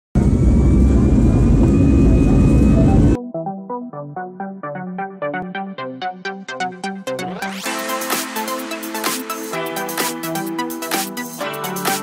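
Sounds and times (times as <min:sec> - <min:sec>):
jet engine roaring: 0:00.2 - 0:03.2
electronic music with plucked notes: 0:02.0 - 0:12.0.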